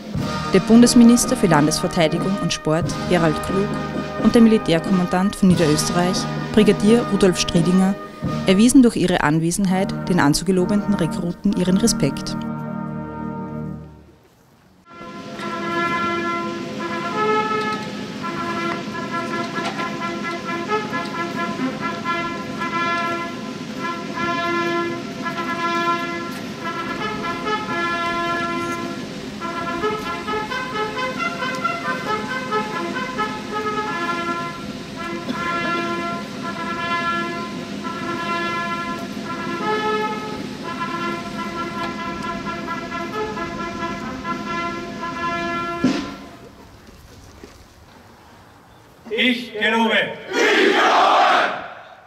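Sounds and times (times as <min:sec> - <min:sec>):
brass band playing: 0:00.0 - 0:14.2, 0:14.9 - 0:46.5, 0:50.1 - 0:51.9.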